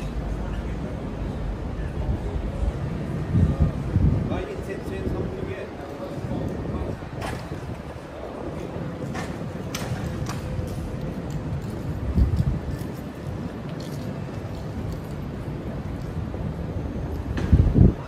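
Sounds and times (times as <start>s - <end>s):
traffic rumble: 0.0s - 18.0s
wind buffeting microphone: 1.8s - 18.0s.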